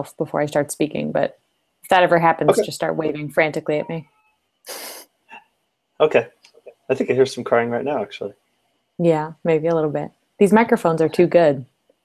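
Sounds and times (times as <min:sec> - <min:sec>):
short breathy hiss: 0:04.7 - 0:05.1.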